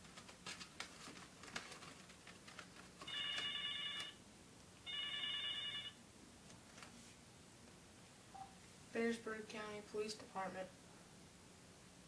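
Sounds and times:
telephone ringing: 3.0s - 4.2s, 4.8s - 6.0s.

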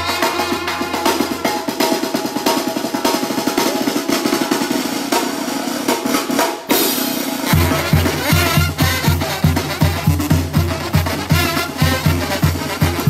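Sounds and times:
brass band playing: 0.0s - 3.6s, 6.7s - 13.0s
fast snare drumming: 0.0s - 13.0s.

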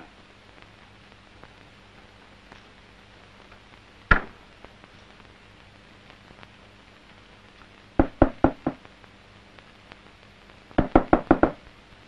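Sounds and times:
knuckles knocking on wooden door: 8.0s - 8.8s, 10.8s - 11.6s.

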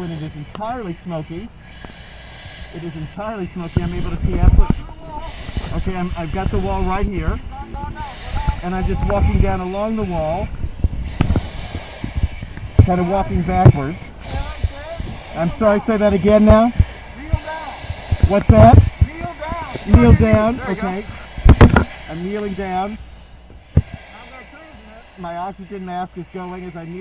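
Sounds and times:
air hissing in breathing mask: 0.0s - 27.0s.

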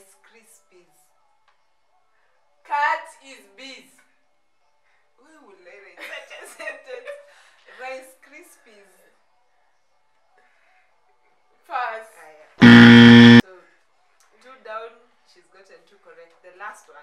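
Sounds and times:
game show buzzer: 12.6s - 13.4s.

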